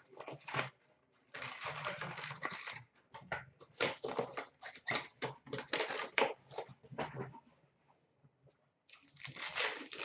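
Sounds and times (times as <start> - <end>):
wrapper rustling: 8.9 - 10.0.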